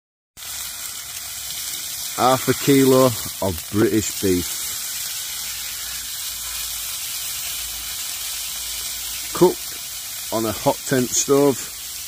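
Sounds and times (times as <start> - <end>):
steak sizzling in a grill pan: 0.4 - 12.0.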